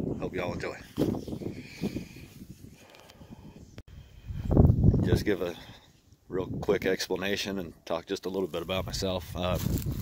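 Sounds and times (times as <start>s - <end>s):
wind buffeting microphone: 0.0s - 5.4s, 8.7s - 10.0s.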